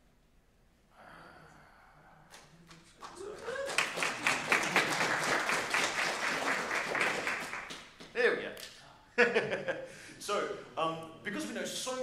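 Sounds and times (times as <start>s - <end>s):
audience applauding: 2.7s - 8.1s.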